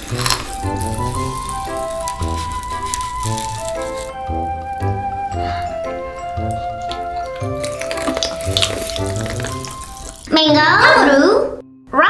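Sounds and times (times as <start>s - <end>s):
candy shell crunching: 0.0s - 10.4s
background music: 0.0s - 12.0s.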